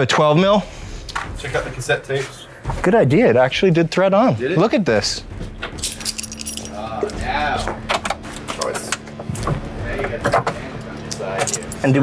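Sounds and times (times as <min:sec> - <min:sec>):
steady hum: 0:00.0 - 0:12.0
metal tools clinking: 0:05.7 - 0:06.9, 0:11.1 - 0:12.0.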